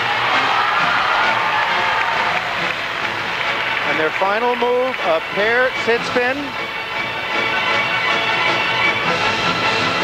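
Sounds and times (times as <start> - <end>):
crowd applauding and cheering: 0.0 - 10.0
skating program music: 0.0 - 10.0.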